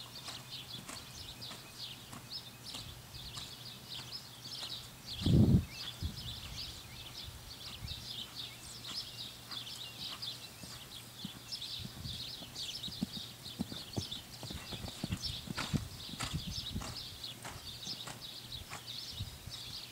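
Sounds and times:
horse hoofbeats on dirt: 0:00.0 - 0:19.8.

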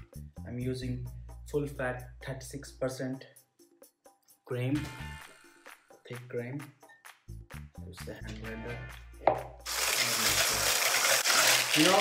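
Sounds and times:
hand blender whirring: 0:09.7 - 0:12.0.

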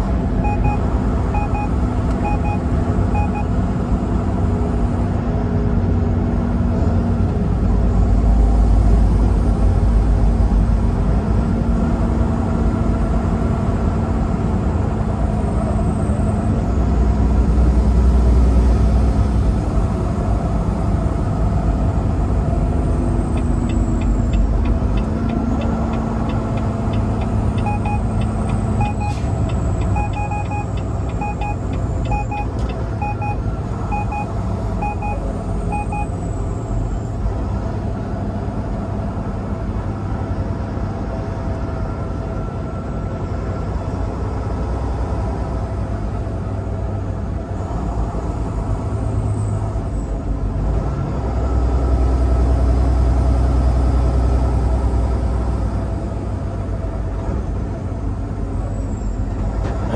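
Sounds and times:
truck engine and road rumble: 0:00.0 - 0:59.9
paired electronic beeps: 0:00.4 - 0:03.5, 0:27.6 - 0:36.1.

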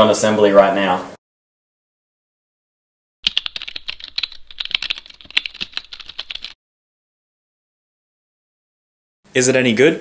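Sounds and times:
fast keyboard typing: 0:03.2 - 0:06.6.

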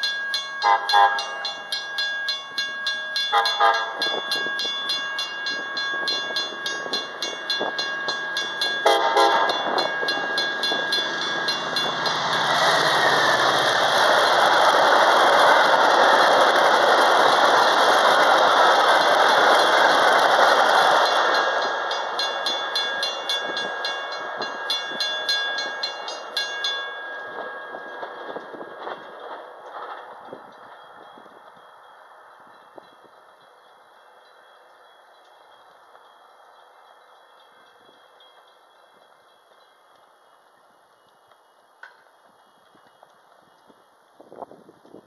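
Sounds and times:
crossing bells dinging: 0:00.0 - 0:43.8
train passing at speed: 0:00.0 - 0:45.0
train horn blast: 0:00.6 - 0:01.3, 0:03.3 - 0:04.0, 0:08.8 - 0:09.6.

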